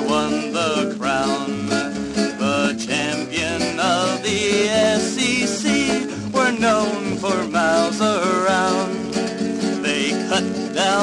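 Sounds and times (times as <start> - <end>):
sliding wavering vocal melody: 0.0 - 9.1
acoustic guitar: 0.0 - 11.0.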